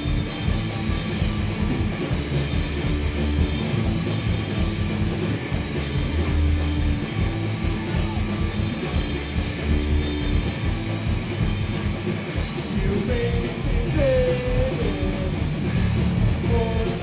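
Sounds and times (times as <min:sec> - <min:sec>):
drum kit: 0:00.0 - 0:17.0
electric guitars: 0:00.0 - 0:17.0
live rock band playing: 0:00.0 - 0:17.0.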